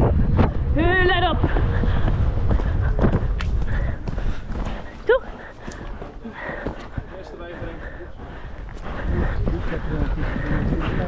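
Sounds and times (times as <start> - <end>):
horse hooves cantering on turf: 2.4 - 11.0.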